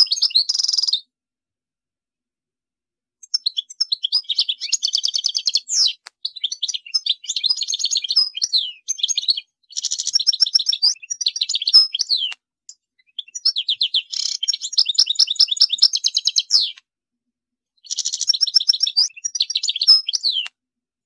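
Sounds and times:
bird twittering trills: 0:03.2 - 0:12.4, 0:13.0 - 0:16.8, 0:17.8 - 0:20.5.

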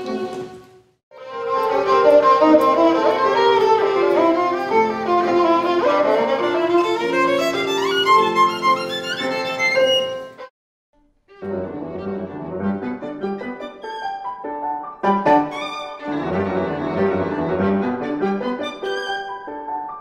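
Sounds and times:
violin playing classical melody: 0:00.0 - 0:10.5, 0:11.2 - 0:19.9.

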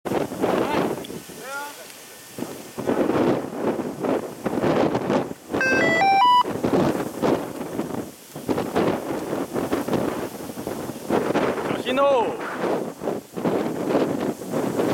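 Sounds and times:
wind buffeting microphone: 0:00.1 - 0:05.6, 0:06.4 - 0:14.9
rising electronic beeps: 0:05.6 - 0:06.5.

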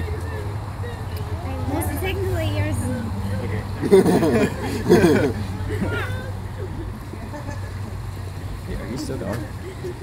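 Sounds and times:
faint voices murmuring: 0:00.0 - 0:10.0
low outdoor rumble: 0:00.0 - 0:10.0.

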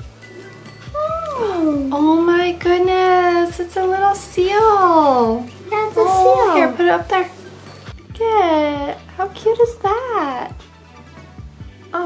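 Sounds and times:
person exclaiming oooh: 0:01.0 - 0:01.9.

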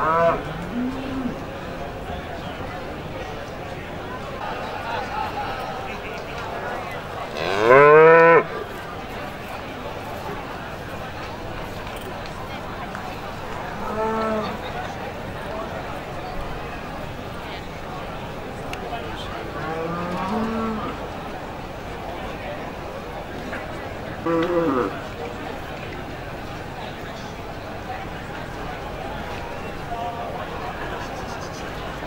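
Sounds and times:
cow mooing: 0:00.0 - 0:01.4, 0:19.6 - 0:21.0, 0:24.2 - 0:24.9.

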